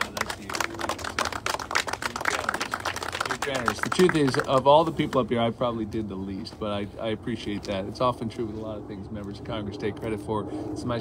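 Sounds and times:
people applauding: 0.0 - 4.9.

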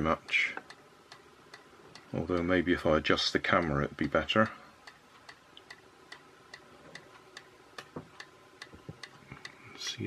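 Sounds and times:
faint even ticking: 0.0 - 10.0.

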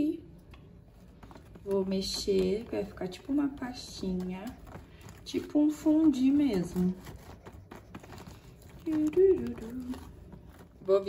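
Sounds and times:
woman's voice: 0.0 - 0.3, 1.6 - 7.2, 8.8 - 10.2, 10.8 - 11.0
spoon stirring thick paste: 0.4 - 11.0.

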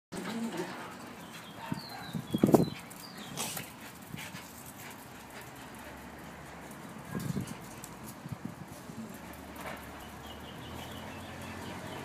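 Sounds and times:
dogs play-fighting: 0.2 - 11.9.

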